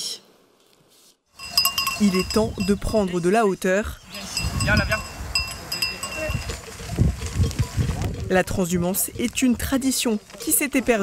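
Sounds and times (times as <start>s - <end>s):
sheep bells clinking: 1.4s - 8.3s.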